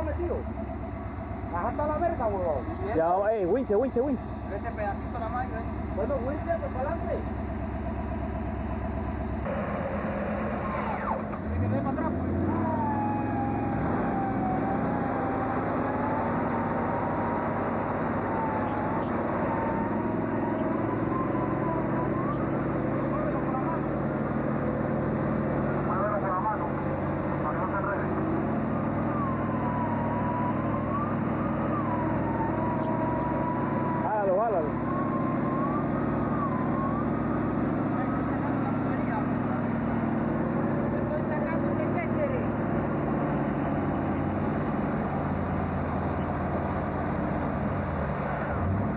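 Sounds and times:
tractor engine running: 0.0 - 48.9.

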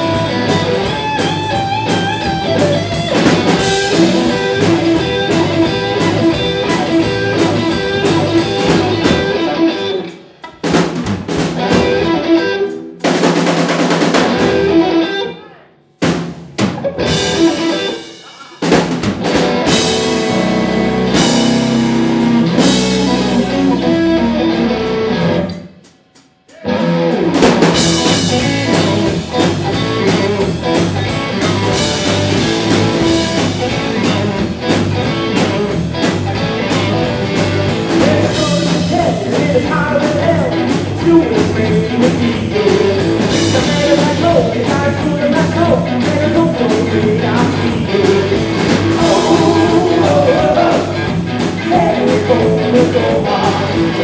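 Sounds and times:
live band playing: 0.0 - 54.0.

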